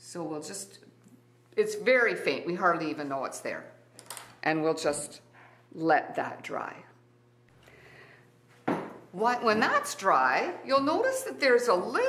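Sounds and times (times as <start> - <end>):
woman speaking: 0.0 - 0.8, 1.6 - 3.8, 4.4 - 7.0, 9.2 - 12.0.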